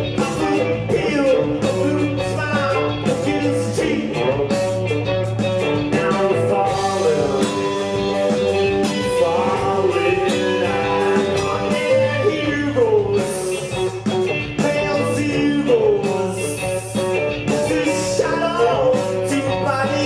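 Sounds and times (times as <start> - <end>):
man singing: 0.0 - 4.9, 5.6 - 20.0
live band playing: 0.0 - 20.0.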